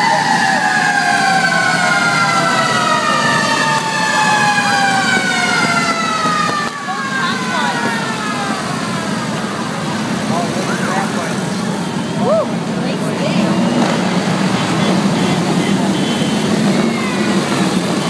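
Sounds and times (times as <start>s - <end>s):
siren winding down: 0.0s - 11.2s
motorcycle engines running: 0.0s - 18.0s.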